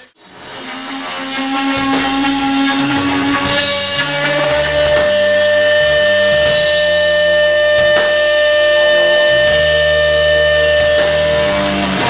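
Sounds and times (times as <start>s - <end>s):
bass notes: 0.0s - 12.0s
electric guitar high note: 0.0s - 12.0s
blues-rock band playing: 0.4s - 12.0s.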